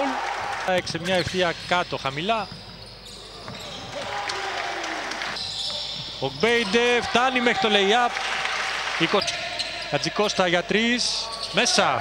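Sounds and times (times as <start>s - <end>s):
hall crowd noise: 0.0s - 2.4s, 3.2s - 12.0s.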